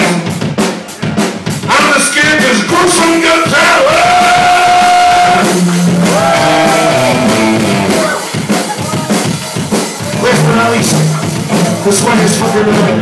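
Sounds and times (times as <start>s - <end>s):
drums: 0.0s - 13.0s
electric guitar bending notes: 3.8s - 8.6s.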